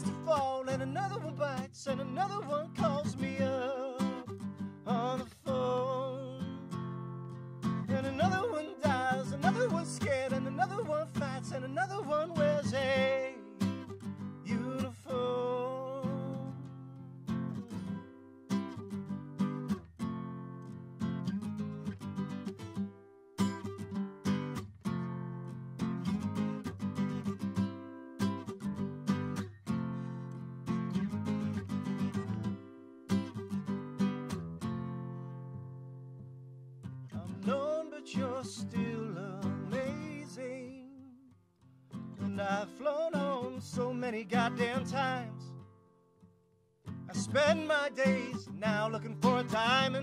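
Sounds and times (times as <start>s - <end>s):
person singing: 0.0s - 6.7s, 7.9s - 13.8s, 14.4s - 16.9s, 37.2s - 41.2s, 42.2s - 45.5s, 47.1s - 50.0s
acoustic guitar strumming: 0.0s - 50.0s.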